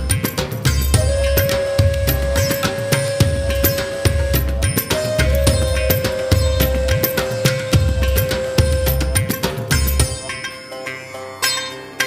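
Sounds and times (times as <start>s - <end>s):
plucked string music: 0.0s - 12.0s.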